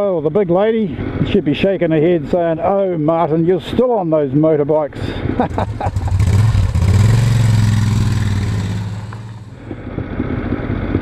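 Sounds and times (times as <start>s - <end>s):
motorcycle engine revving: 5.4s - 10.4s.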